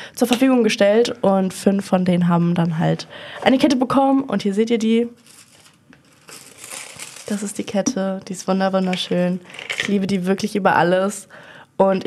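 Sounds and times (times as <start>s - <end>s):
paper packaging crinkling: 5.1s - 7.9s.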